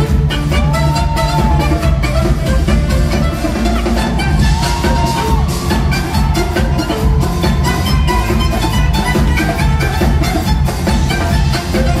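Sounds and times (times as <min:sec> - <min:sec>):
live pop band playing: 0:00.0 - 0:12.0.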